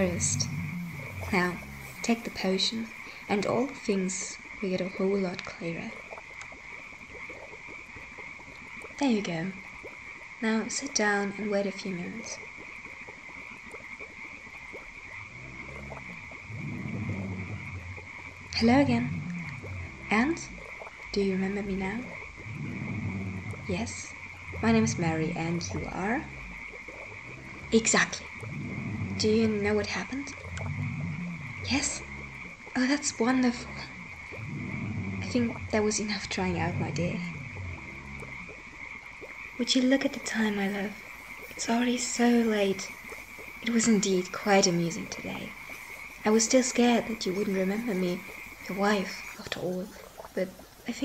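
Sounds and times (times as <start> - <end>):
deep drawn-out frog call: 0.0 - 51.0
frogs croaking: 0.0 - 51.0.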